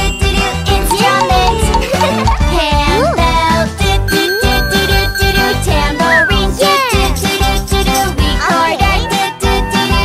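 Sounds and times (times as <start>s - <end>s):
hand bell ringing: 0.0s - 2.4s, 4.1s - 5.7s
children's song music: 0.0s - 10.0s.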